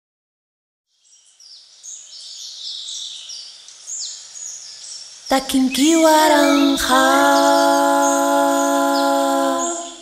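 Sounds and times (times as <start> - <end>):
many birds chirping and trilling: 0.9 - 10.0.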